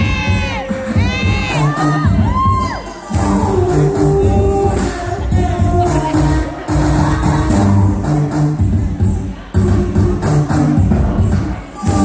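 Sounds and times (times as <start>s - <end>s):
audience shrieking and cheering: 0.0s - 4.4s
dance music with bass beat: 0.0s - 12.0s.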